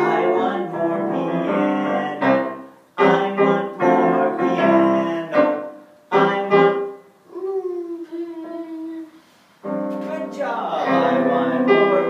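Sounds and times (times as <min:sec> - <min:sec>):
person humming: 0:07.3 - 0:09.2.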